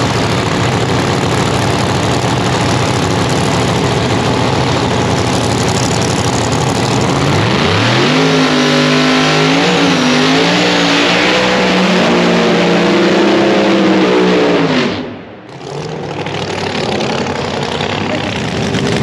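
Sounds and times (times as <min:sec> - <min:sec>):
drag car engine idling and revving: 0:00.0 - 0:19.0
tyres spinning in burnout: 0:15.6 - 0:19.0.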